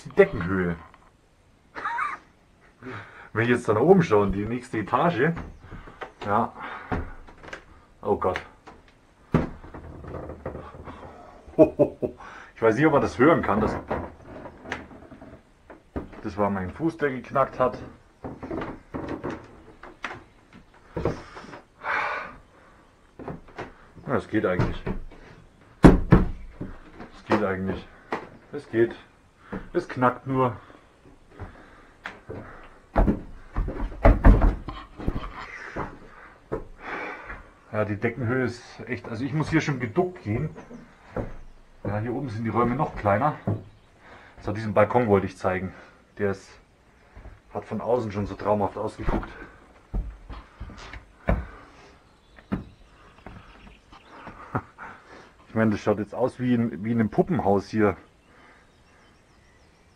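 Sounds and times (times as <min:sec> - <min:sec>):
wooden stairs creaking: 0:02.9 - 0:46.0, 0:46.9 - 0:55.8
heavy footsteps on wooden floorboards: 0:03.9 - 0:11.4, 0:13.1 - 0:21.6, 0:23.0 - 0:45.3, 0:47.0 - 0:55.0.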